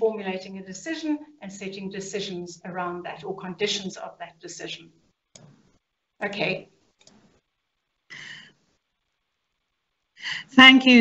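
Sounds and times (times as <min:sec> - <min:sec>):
person breathy exhale: 0:08.1 - 0:08.5.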